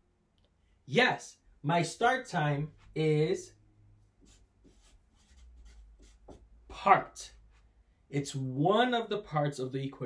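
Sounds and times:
marker scratching on paper: 4.1s - 6.9s.

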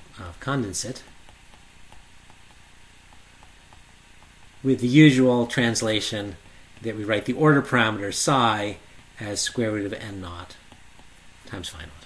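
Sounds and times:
low steady hiss: 0.0s - 12.0s
stylus tapping on tablet screen: 0.7s - 11.4s.

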